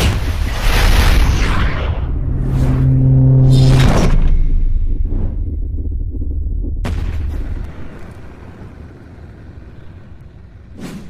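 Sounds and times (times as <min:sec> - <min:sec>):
sudden hit sound effect: 0:00.0 - 0:07.7.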